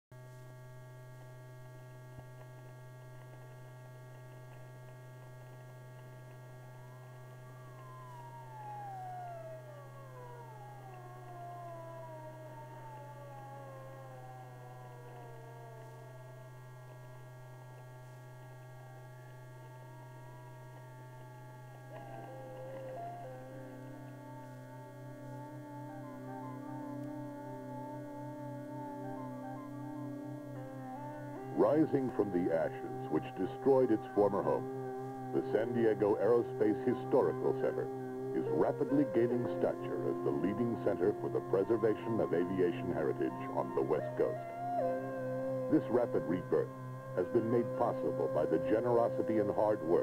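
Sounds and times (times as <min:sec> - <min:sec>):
steady low hum: 0:00.2 - 0:50.0
steady musical tones: 0:04.3 - 0:50.0
sirens winding down: 0:06.5 - 0:50.0.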